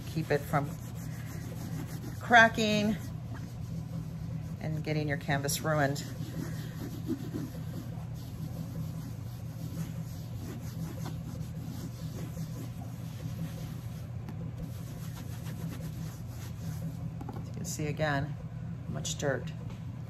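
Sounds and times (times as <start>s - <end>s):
damp wipe rubbing canvas: 0.0s - 17.1s
steady low hum: 0.0s - 20.0s.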